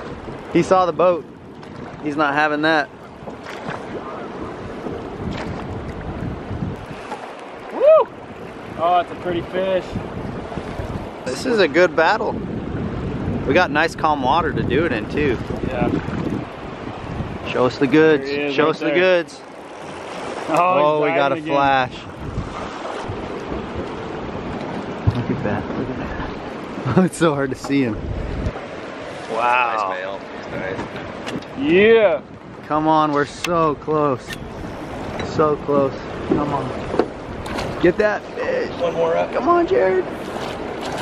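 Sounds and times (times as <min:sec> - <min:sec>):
river water rushing: 0:00.0 - 0:13.3, 0:15.3 - 0:33.4, 0:34.4 - 0:41.0
wind rumbling on microphone: 0:00.0 - 0:18.2, 0:19.6 - 0:41.0.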